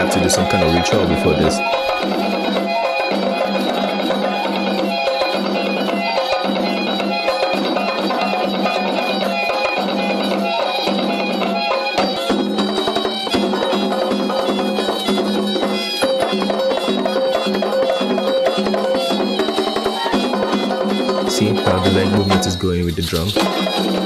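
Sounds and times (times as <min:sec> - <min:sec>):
flutes playing repeating phrases: 0:00.0 - 0:05.0, 0:19.2 - 0:24.0
drumming: 0:00.0 - 0:24.0.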